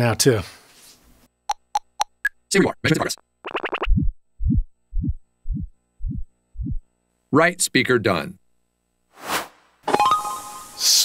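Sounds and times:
buzzy test tone: 0:02.9 - 0:06.8
low-pitched pulses: 0:03.6 - 0:06.8.

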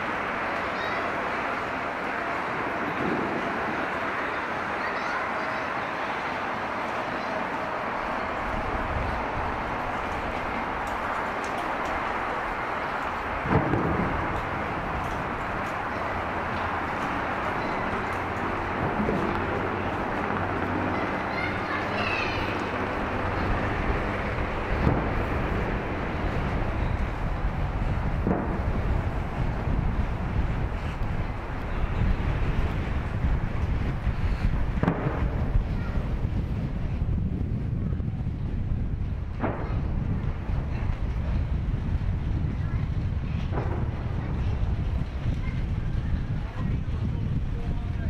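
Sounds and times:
low city rumble: 0:00.0 - 0:48.0
wind buffeting microphone: 0:00.0 - 0:48.0.

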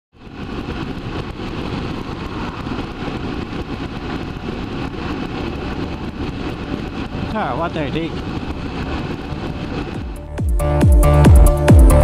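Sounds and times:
wind rush: 0:00.1 - 0:12.0.

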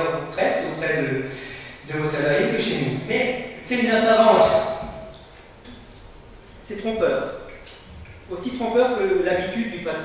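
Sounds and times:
man speaking into a microphone: 0:02.0 - 0:05.0.

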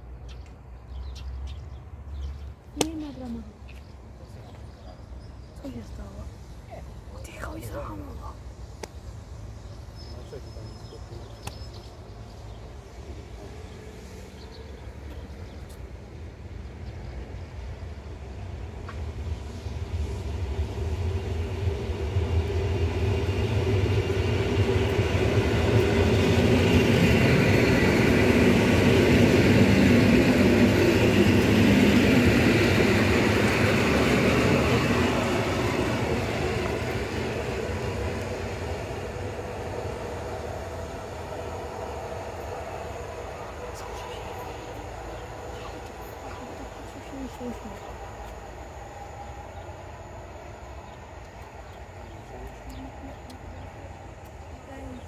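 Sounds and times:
train wheels rumbling on rails: 0:05.6 - 0:55.0
train motor hum: 0:11.9 - 0:55.0.

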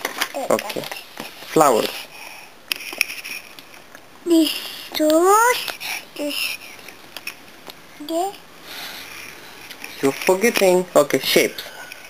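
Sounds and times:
soft sniffing breath: 0:08.6 - 0:09.7.

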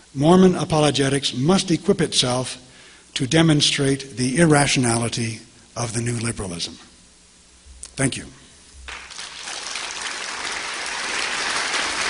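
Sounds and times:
audience applauding: 0:08.9 - 0:12.0.

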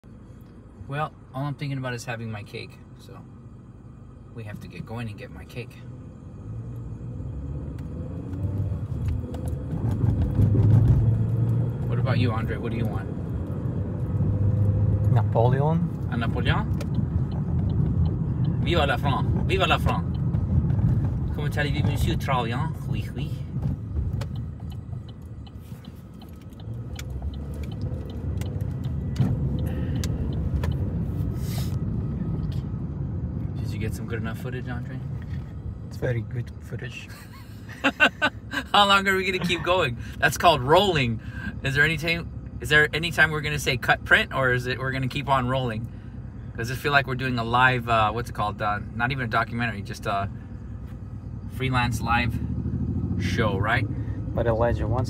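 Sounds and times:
car engine from inside cabin: 0:00.0 - 0:55.0
road rumble: 0:00.0 - 0:55.0.

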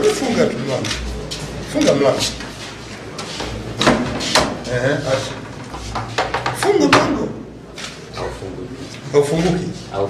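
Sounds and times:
door knocking against frame: 0:05.7 - 0:07.2.

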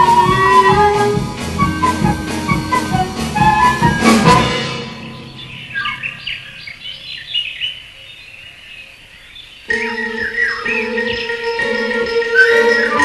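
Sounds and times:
music with held notes: 0:00.0 - 0:06.0, 0:09.7 - 0:13.0
high bird chirps and tweets: 0:04.8 - 0:11.6.

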